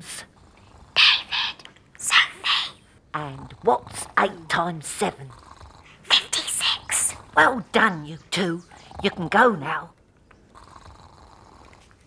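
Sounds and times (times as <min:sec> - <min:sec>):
faint snoring: 0:00.0 - 0:01.6, 0:02.6 - 0:07.5, 0:08.6 - 0:09.5, 0:10.5 - 0:11.9.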